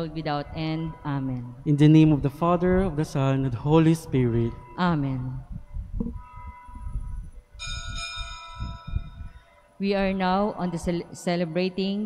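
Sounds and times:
bell ringing: 7.6s - 11.9s.

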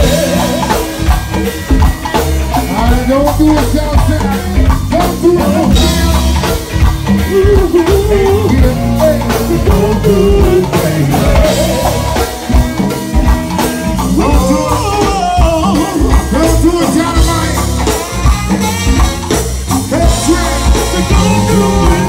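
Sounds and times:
vocalists singing: 0.0s - 1.1s, 2.6s - 12.6s, 14.0s - 17.9s, 19.7s - 22.0s
drum kit: 0.0s - 22.0s
electric guitar: 0.0s - 22.0s
keyboards: 0.0s - 22.0s.

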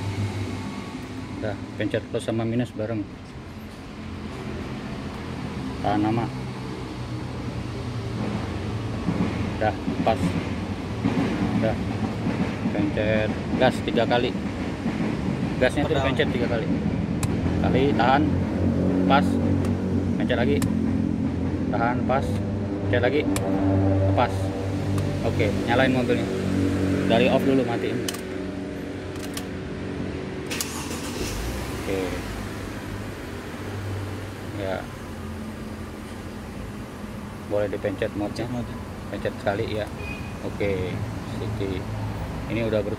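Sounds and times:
engine low rumble: 0.0s - 42.9s.

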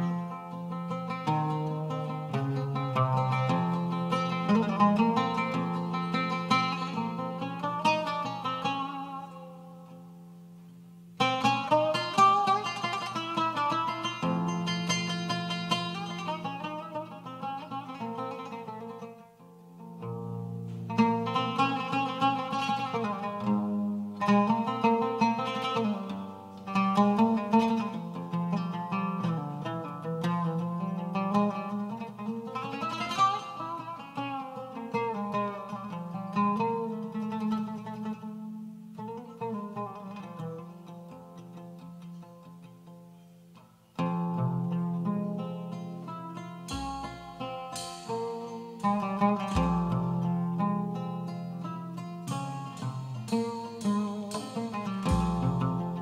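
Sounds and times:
oud plucked melody: 0.0s - 56.0s.

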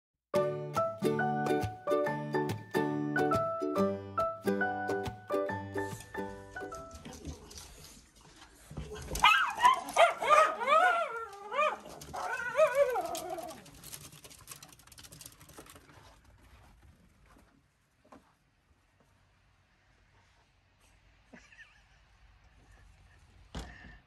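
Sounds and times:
music jingle: 0.4s - 7.2s
dogs barking and yipping: 9.2s - 13.9s.

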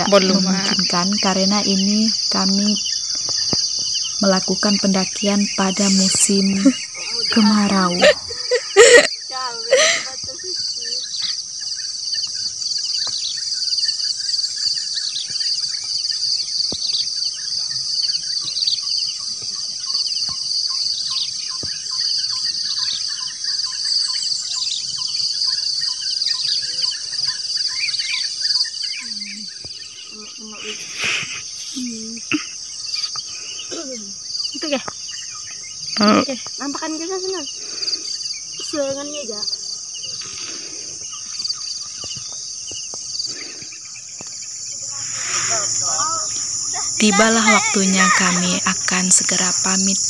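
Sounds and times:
birds chirping: 0.0s - 50.0s
insects chorus: 0.0s - 50.0s.

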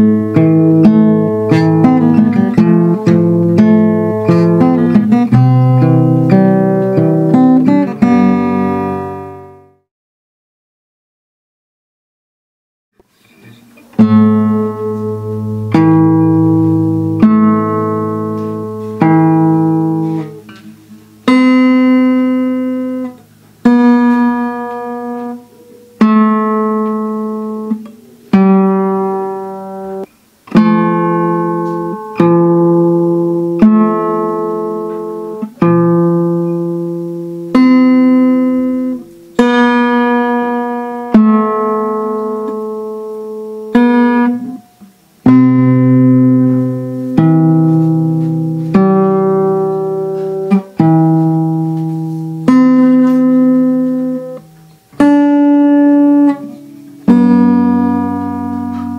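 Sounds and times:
fingerstyle acoustic guitar: 0.0s - 9.8s, 13.0s - 58.9s.

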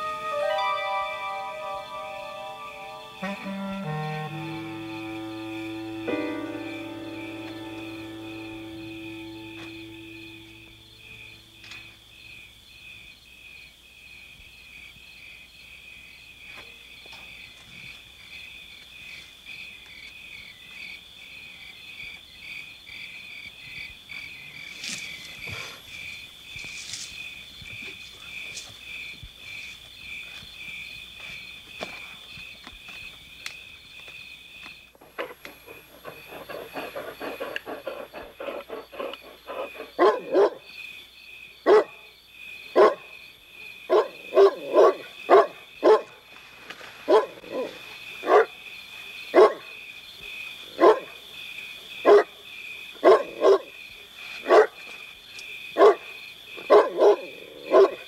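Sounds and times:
night insects chirring: 0.0s - 58.0s
large dog barking: 35.0s - 40.7s, 41.6s - 42.1s, 42.7s - 43.1s, 43.9s - 46.2s, 47.1s - 48.6s, 49.3s - 49.8s, 50.8s - 51.2s, 52.0s - 52.4s, 53.0s - 53.8s, 54.4s - 54.8s, 55.8s - 58.0s.

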